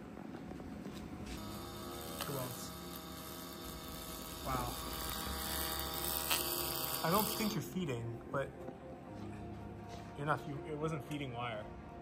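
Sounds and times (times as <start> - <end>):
laser welder buzzing: 1.3 - 7.7.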